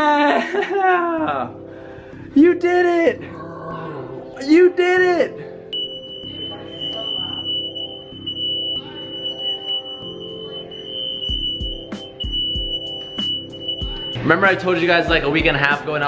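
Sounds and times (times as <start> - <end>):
smoke alarm high-pitched tone: 5.7 - 15.4.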